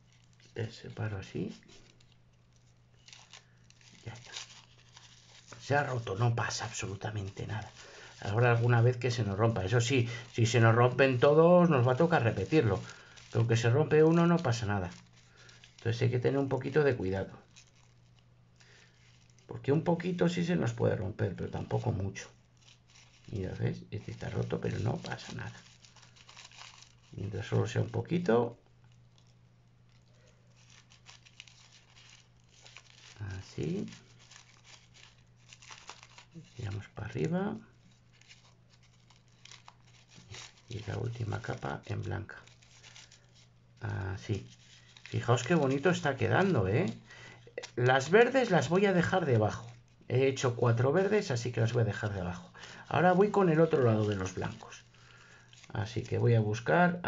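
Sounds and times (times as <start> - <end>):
tissue paper rustling and tearing: 0.0 - 56.7
low steady hum: 0.0 - 57.0.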